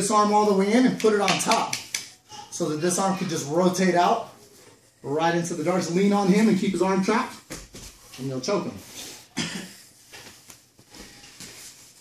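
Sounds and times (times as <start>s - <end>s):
bodies rustling on a mat: 7.3s - 12.0s.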